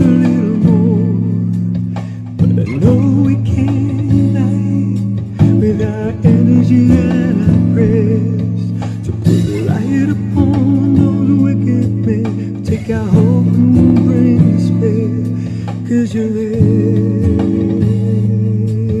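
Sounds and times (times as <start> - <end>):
guitar playing: 0.0 - 19.0.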